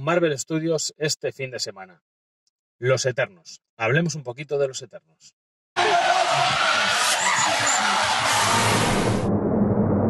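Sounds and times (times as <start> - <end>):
car engine: 5.8 - 10.0.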